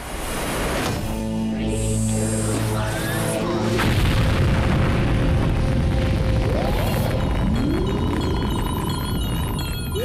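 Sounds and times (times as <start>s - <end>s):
film soundtrack music: 0.8s - 10.0s
deep sustained boom: 3.8s - 8.2s.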